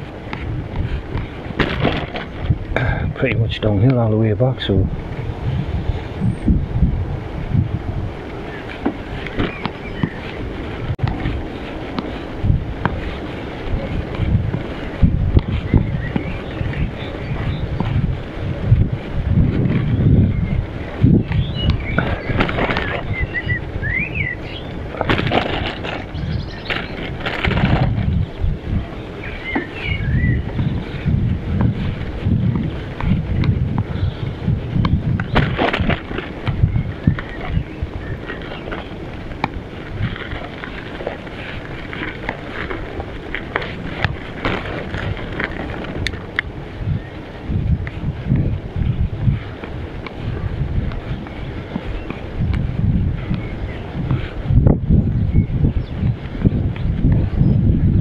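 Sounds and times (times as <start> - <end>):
bicycle rattling and knocking: 0.0 - 4.0, 8.4 - 23.8, 24.6 - 58.0
wind buffeting microphone: 0.0 - 58.0
bird chirps: 20.1 - 24.8, 26.1 - 27.1, 28.1 - 31.0.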